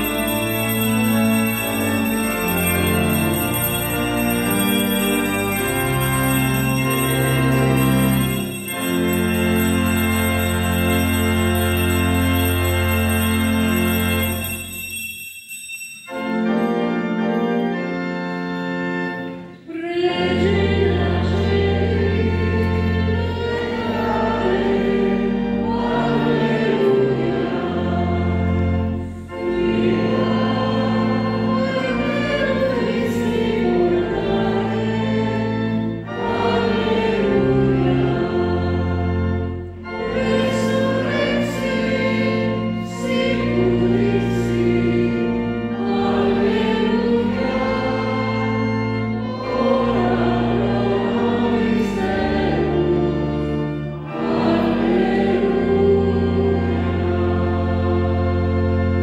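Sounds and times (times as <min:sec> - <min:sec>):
choir singing a hymn: 0:00.0 - 0:14.7, 0:16.5 - 0:59.0.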